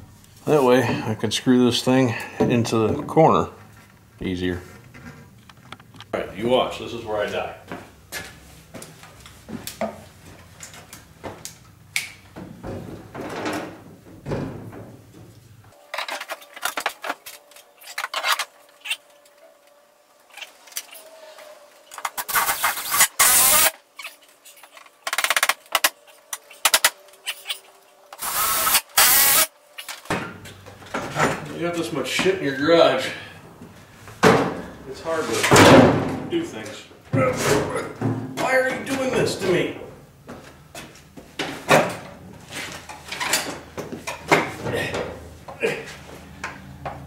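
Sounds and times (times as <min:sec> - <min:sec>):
cordless drill driving screws: 0:22.1 - 0:23.8, 0:28.2 - 0:29.5.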